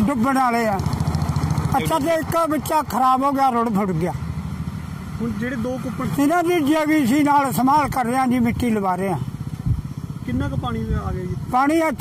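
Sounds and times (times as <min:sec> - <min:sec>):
man talking: 0:00.0 - 0:00.9, 0:01.6 - 0:04.2, 0:05.2 - 0:09.3, 0:10.2 - 0:12.0
engine idling: 0:00.0 - 0:12.0.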